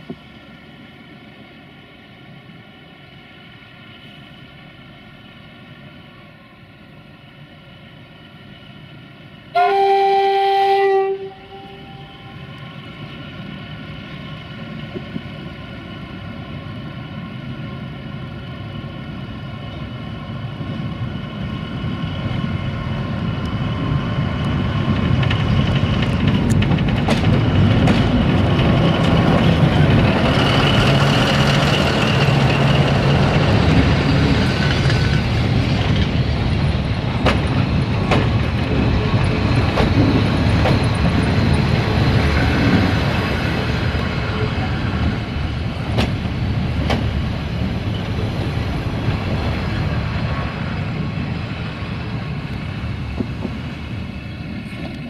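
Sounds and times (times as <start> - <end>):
locomotive engine humming: 0.0 - 55.0
train wheels rumbling on rail: 0.0 - 55.0
two-tone train horn blast: 9.5 - 12.4.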